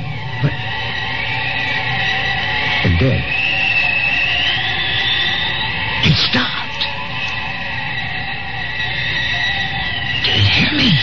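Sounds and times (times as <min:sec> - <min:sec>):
high electronic drone: 0:00.0 - 0:11.0.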